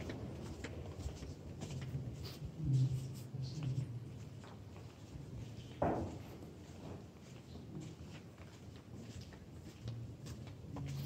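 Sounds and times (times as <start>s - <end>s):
footsteps on wooden floor: 0.0s - 11.0s.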